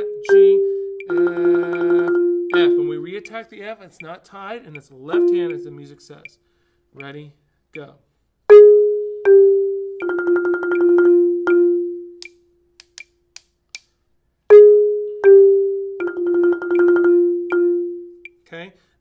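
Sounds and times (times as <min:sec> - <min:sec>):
marimba played with mallets: 0:00.0 - 0:03.4, 0:08.5 - 0:12.1, 0:14.5 - 0:18.1.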